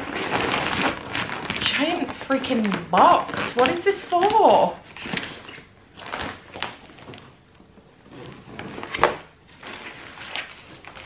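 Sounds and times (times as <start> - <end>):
paper rustling: 0.0 - 7.4, 8.0 - 11.0.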